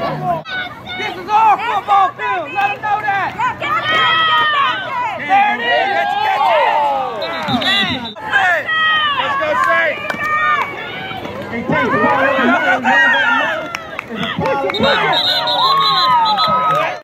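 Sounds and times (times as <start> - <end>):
spectators yelling and cheering: 0.0 - 17.0.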